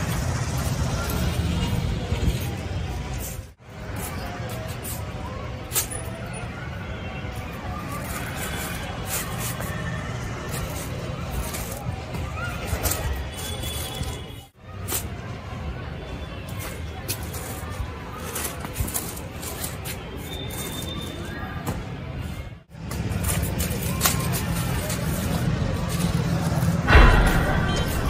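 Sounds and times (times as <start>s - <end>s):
paper kite rustling: 7.7s - 15.2s, 16.4s - 21.5s, 22.8s - 27.0s.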